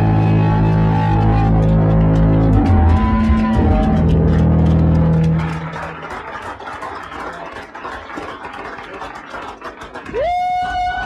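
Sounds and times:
electric guitar and bass chord: 0.0s - 6.1s
crowd clapping and cheering: 0.0s - 11.0s.

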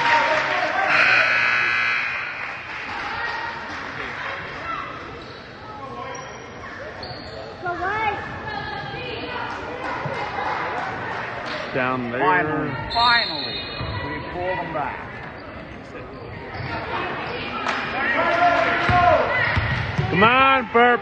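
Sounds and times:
crowd chatter echoing: 0.0s - 21.0s
steady buzzer tone: 0.9s - 2.7s.

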